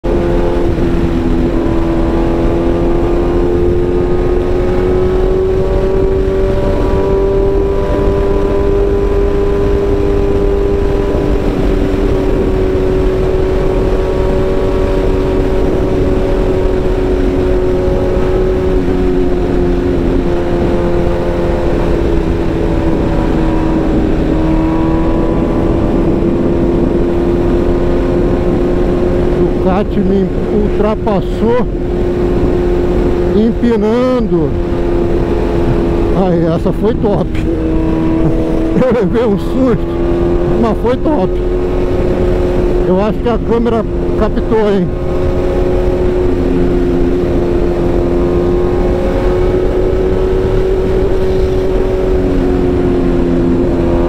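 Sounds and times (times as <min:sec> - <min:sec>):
motorcycle engine at speed: 0:00.0 - 0:54.0
wind rush: 0:00.0 - 0:54.0.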